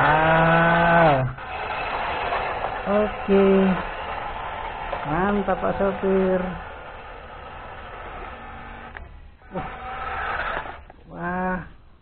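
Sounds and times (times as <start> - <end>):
electric motor whirring: 0.0 - 11.0.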